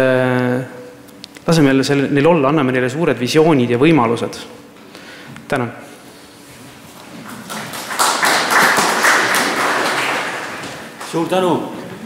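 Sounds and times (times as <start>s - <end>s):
audience applauding: 7.2s - 11.6s.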